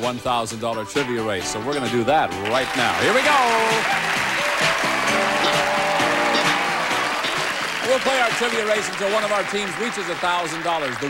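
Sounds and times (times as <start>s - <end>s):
game show music cue: 1.0s - 11.0s
studio audience applause: 2.3s - 11.0s.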